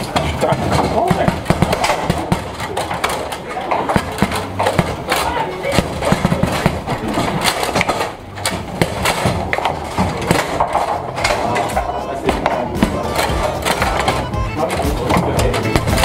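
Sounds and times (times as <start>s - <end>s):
background music: 0.0s - 16.0s
foosball knocks and clacks: 0.0s - 16.0s
metal rods sliding and banging: 0.0s - 16.0s
people talking: 0.0s - 16.0s.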